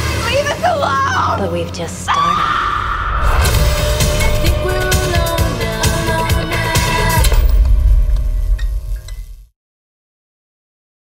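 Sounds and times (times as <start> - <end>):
deep low rumble: 2.2 - 9.5
pitched music: 3.2 - 8.2.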